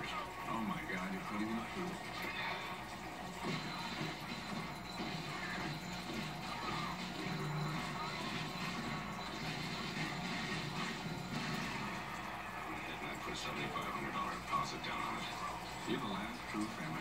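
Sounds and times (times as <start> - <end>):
muffled voices: 0.0 - 4.3, 12.2 - 17.0.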